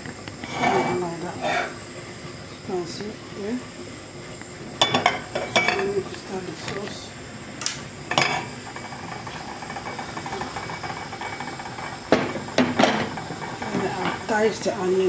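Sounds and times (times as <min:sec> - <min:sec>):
metal saucepan and utensils clinking: 0:04.8 - 0:06.0, 0:08.1 - 0:14.4.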